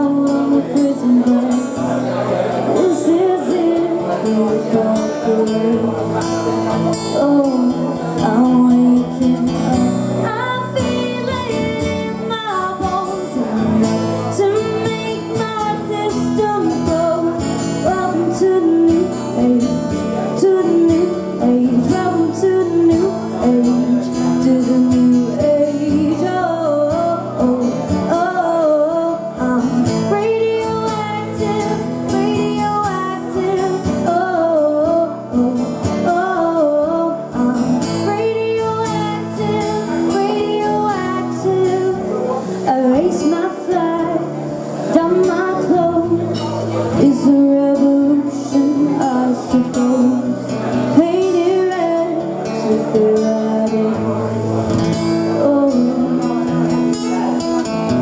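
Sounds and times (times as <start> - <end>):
strummed acoustic guitar: 0.0 - 58.0
woman singing: 0.0 - 58.0.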